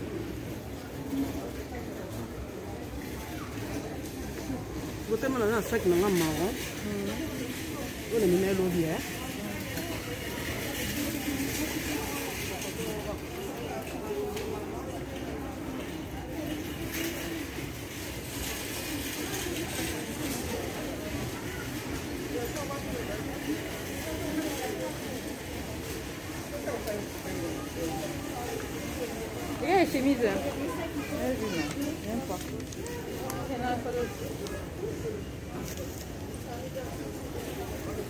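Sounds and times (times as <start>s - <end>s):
murmur of shoppers' voices: 0.0s - 38.0s.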